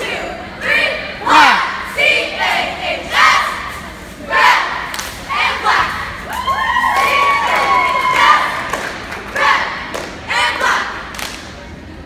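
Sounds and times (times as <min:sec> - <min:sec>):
cheerleaders shouting in unison: 0:00.0 - 0:08.7.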